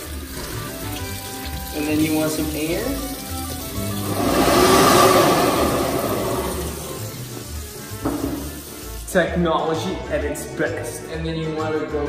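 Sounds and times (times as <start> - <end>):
background music: 0.0 - 12.0
hand dryer whoosh: 3.7 - 7.5.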